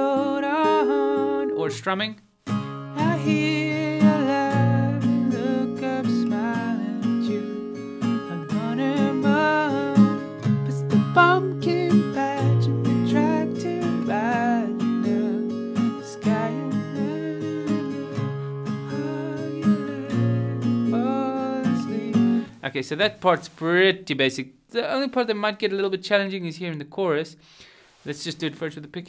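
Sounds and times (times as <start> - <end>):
man singing: 0.0 - 1.8, 3.0 - 18.3, 18.9 - 22.5
acoustic guitar strumming: 0.0 - 22.6.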